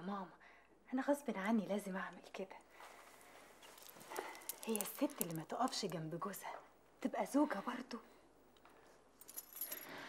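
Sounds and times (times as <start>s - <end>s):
faint metallic jangling: 3.6s - 6.0s, 9.1s - 10.0s.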